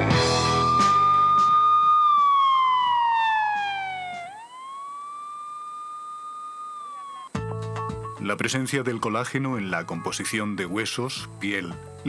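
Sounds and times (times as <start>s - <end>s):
backing music: 0.0s - 2.7s, 7.3s - 12.0s
siren-like electronic tone sliding: 0.2s - 7.4s.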